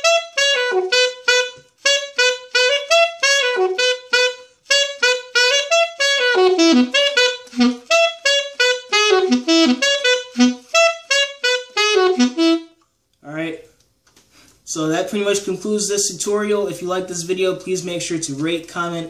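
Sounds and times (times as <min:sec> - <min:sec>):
alto saxophone melody: 0:00.0 - 0:12.8.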